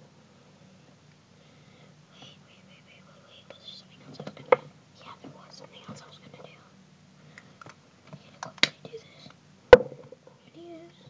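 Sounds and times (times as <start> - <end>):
soft whispering: 1.8 - 6.8, 8.1 - 9.4.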